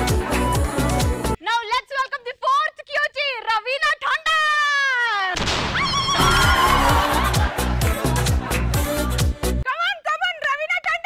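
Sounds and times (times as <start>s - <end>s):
dance music with heavy beat: 6.5s - 9.6s.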